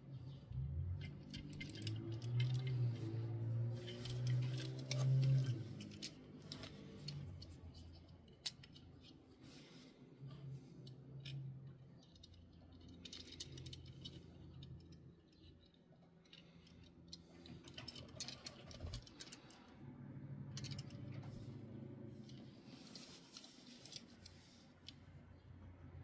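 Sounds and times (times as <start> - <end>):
fingers handling toy cars: 0.1 - 19.8, 20.4 - 25.7.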